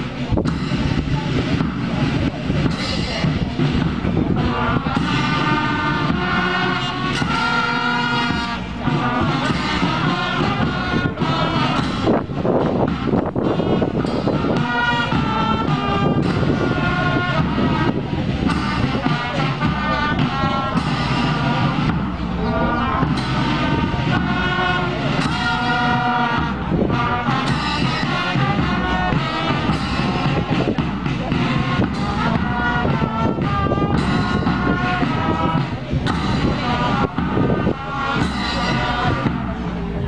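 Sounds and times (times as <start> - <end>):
cymbal crashes: 0.0 - 37.6, 38.2 - 40.0
bass and snare drums: 0.0 - 40.0
brass chords: 0.0 - 40.0.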